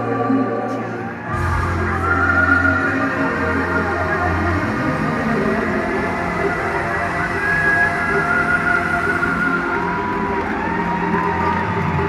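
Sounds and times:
crowd noise: 0:00.0 - 0:12.0
live pop band music: 0:00.0 - 0:12.0.

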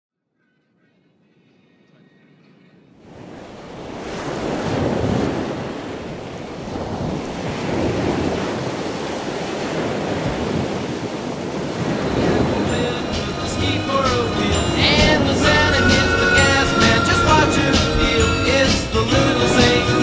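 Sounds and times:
ocean surf on sand: 0:03.0 - 0:20.0
wind on microphone: 0:03.1 - 0:20.0.

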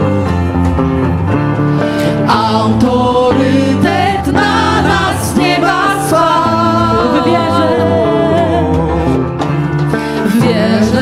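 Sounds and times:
band with keyboard and drums: 0:00.0 - 0:11.0
voices singing along: 0:02.2 - 0:09.3
woman singing lead: 0:03.3 - 0:09.5, 0:10.1 - 0:11.0.

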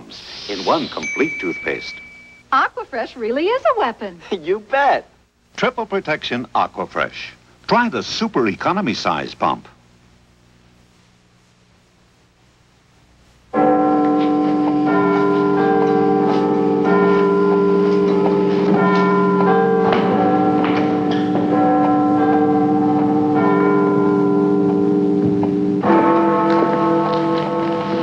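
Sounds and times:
bells ringing: 0:00.9 - 0:02.4, 0:13.6 - 0:28.0.

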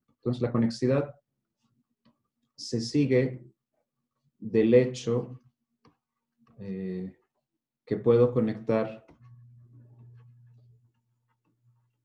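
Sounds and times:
low steady hum: 0:08.0 - 0:11.0.

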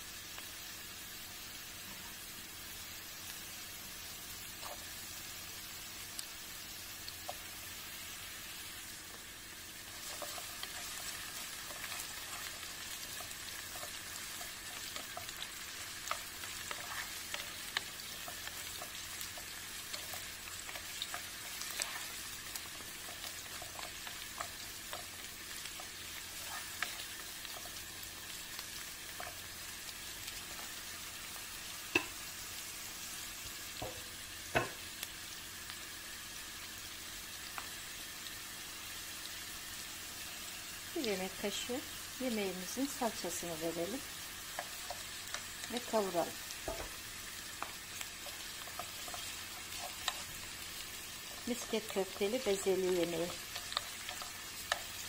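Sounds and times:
vegetables sizzling in oil: 0:00.0 - 0:55.0.

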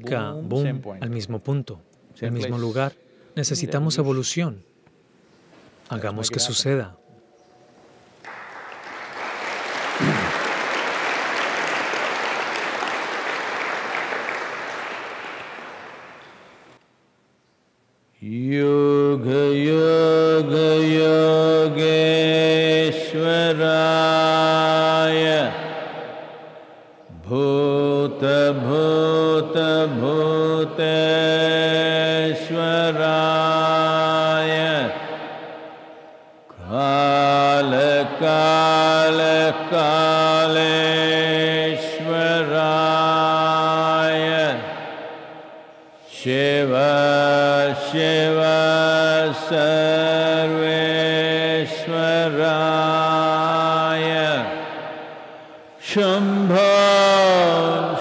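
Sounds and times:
man chanting: 0:36.6 - 0:44.8, 0:46.1 - 0:54.6, 0:55.8 - 0:58.0.

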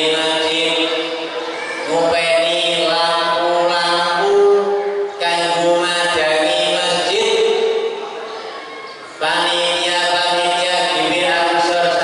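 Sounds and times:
man chanting into a microphone: 0:00.0 - 0:07.9, 0:09.2 - 0:12.0.

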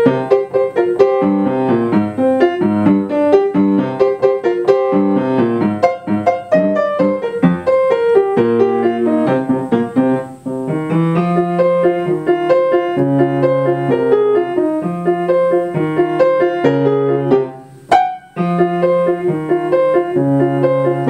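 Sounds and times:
upright piano rock piece: 0:00.0 - 0:21.0.

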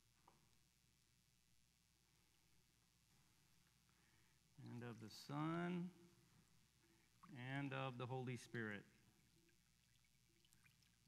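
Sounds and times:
faint water trickle: 0:00.0 - 0:11.0.

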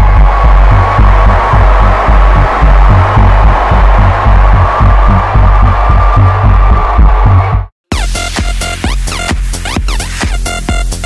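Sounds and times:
loud dance music with bass beat: 0:00.0 - 0:11.0.

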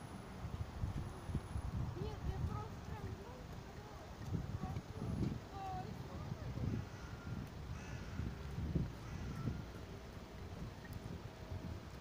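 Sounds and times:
traffic rumble: 0:00.0 - 0:12.0
crow-like bird calls: 0:06.6 - 0:09.8.

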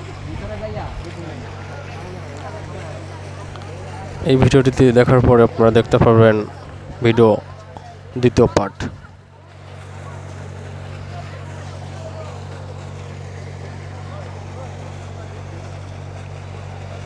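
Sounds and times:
distant voices: 0:00.0 - 0:17.0
low motor hum: 0:00.0 - 0:17.0
outdoor background noise: 0:00.0 - 0:17.0.

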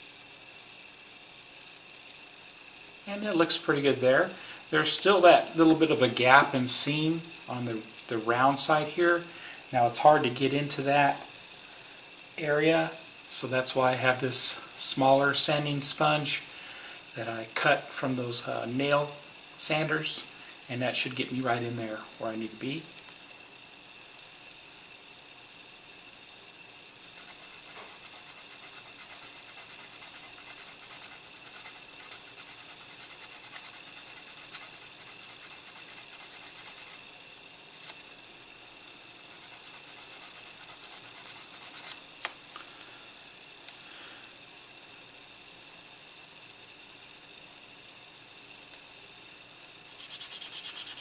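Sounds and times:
sanding sponge scratching plastic: 0:27.2 - 0:37.0, 0:39.3 - 0:42.0, 0:49.8 - 0:51.0.

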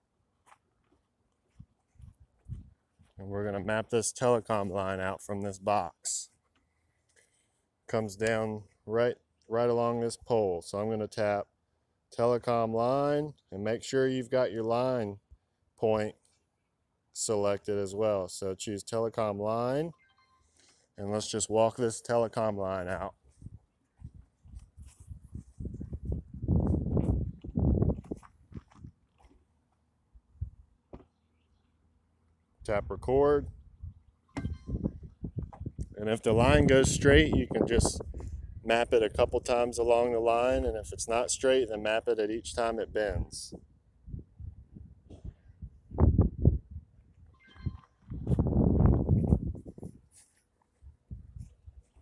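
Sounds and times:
footsteps: 0:00.4 - 0:05.2, 0:23.0 - 0:29.9, 0:47.5 - 0:52.0
faint short tone: 0:19.9 - 0:20.6, 0:34.3 - 0:35.0, 0:47.3 - 0:48.1.

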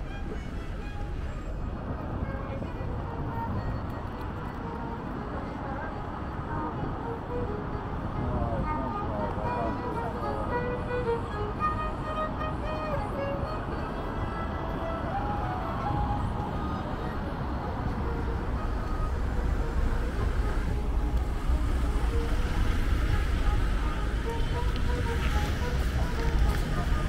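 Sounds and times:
heavy vehicle engine rumble: 0:00.0 - 0:27.0
vehicles passing close: 0:00.0 - 0:27.0
voices: 0:04.2 - 0:27.0.

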